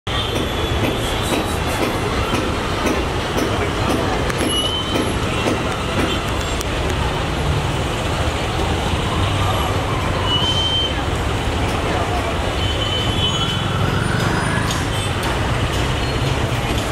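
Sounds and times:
street traffic: 0.0 - 16.9
people talking: 0.1 - 16.9.

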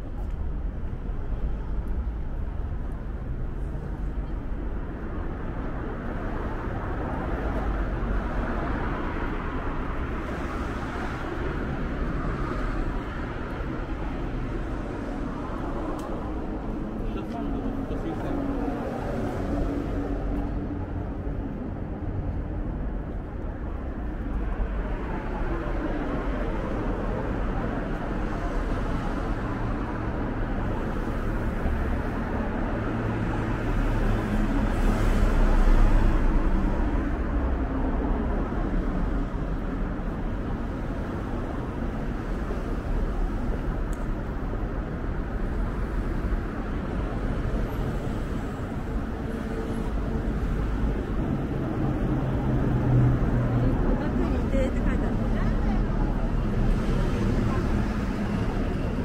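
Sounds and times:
cars passing on city road: 0.0 - 59.0.

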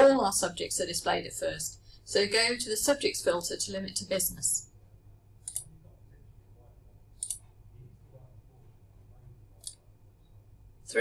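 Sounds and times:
faint low hum: 0.0 - 11.0
computer mouse clicks: 5.4 - 5.7, 7.2 - 7.5, 9.6 - 9.8.

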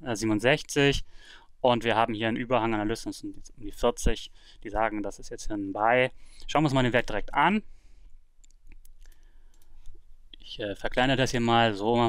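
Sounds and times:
computer mouse clicks: 8.4 - 10.0.

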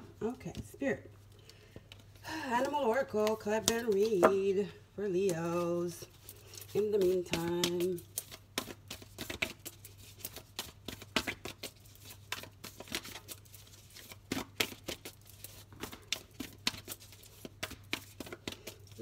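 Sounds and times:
cards being shuffled: 5.2 - 19.0.

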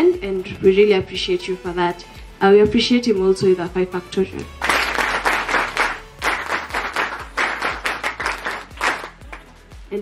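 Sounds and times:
people clapping in time: 4.6 - 9.6.

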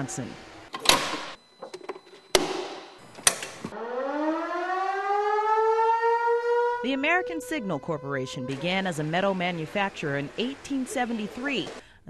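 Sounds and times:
warning siren winding up: 3.7 - 11.8.

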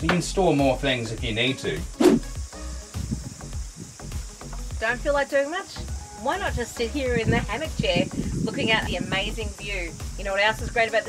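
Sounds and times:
quiet background music: 0.0 - 11.0
whoosh sweeping down: 2.0 - 2.3.

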